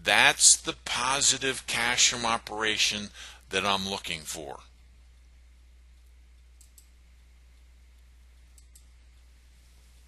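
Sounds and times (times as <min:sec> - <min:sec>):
steady low hum: 0:00.0 - 0:10.0
computer mouse clicks: 0:06.0 - 0:07.0, 0:08.5 - 0:08.9.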